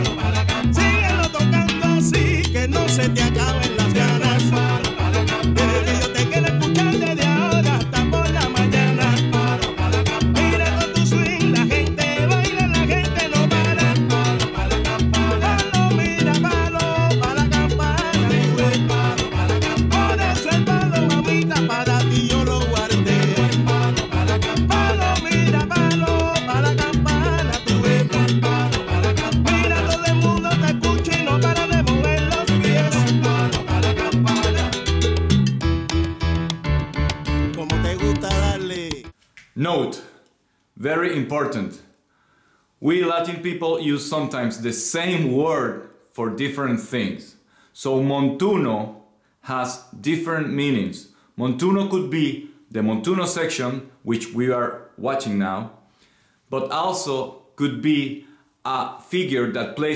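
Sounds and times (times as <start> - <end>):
chorus singing: 0.0 - 1.2, 3.4 - 6.9, 8.7 - 11.2, 13.4 - 16.1, 17.4 - 34.8
piano: 0.0 - 39.2
salsa band playing: 0.0 - 39.2
bass: 0.0 - 40.0.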